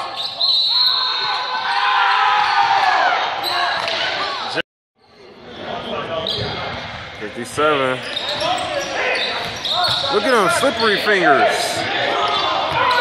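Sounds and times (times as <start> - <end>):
sneakers squeaking: 0.0 - 1.7, 5.8 - 7.2, 8.0 - 13.0
players' voices: 5.4 - 13.0.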